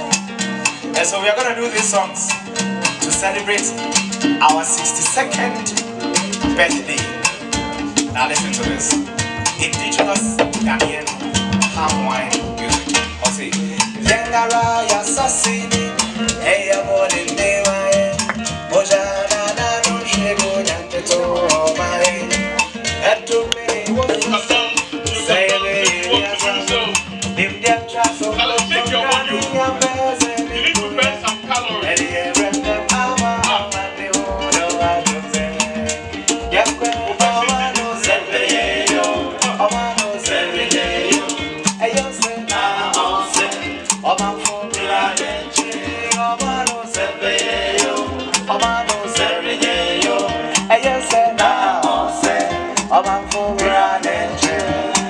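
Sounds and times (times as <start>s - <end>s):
strummed acoustic guitar: 0.0s - 55.0s
voices singing: 4.4s - 55.0s.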